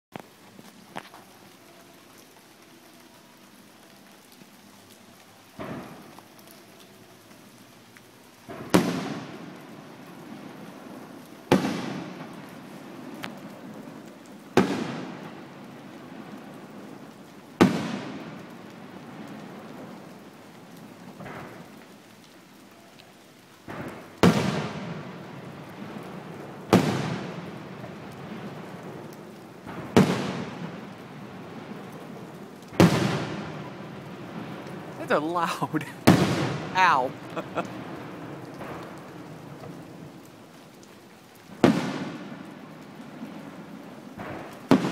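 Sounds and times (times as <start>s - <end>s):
small firework pops: 0.1s - 1.3s, 5.5s - 6.9s, 8.0s - 9.7s, 11.5s - 15.3s, 17.6s - 19.4s, 21.1s - 22.3s, 23.6s - 25.2s, 26.7s - 31.0s, 31.8s - 33.7s, 37.7s - 40.1s, 41.4s - 44.9s.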